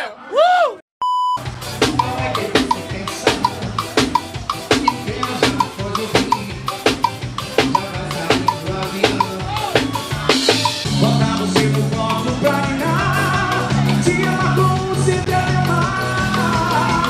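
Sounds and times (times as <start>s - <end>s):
drum kit and percussion: 1.3s - 17.0s
bass line: 1.4s - 17.0s.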